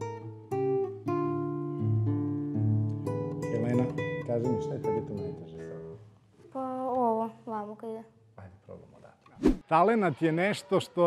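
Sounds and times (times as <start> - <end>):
fingerpicked nylon-string guitar: 0.0 - 6.0.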